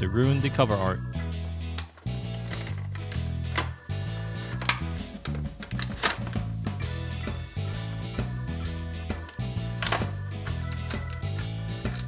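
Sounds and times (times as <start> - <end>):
background music with bass line: 0.0 - 12.0.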